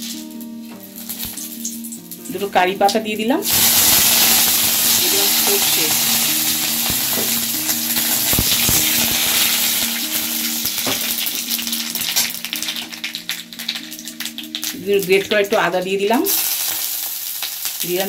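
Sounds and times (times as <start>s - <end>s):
leaves sizzling in hot oil: 0.0s - 18.0s.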